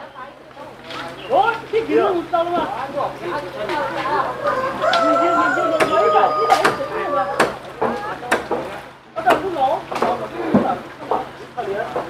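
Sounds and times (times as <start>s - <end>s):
distant voices: 0.0s - 12.0s
rooster crowing: 4.2s - 7.6s
sharp knocks: 7.4s - 11.3s.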